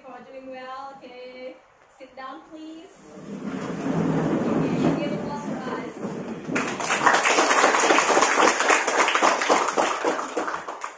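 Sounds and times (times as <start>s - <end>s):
chairs and desks scraping: 3.0s - 8.0s
hands clapping: 6.4s - 10.9s.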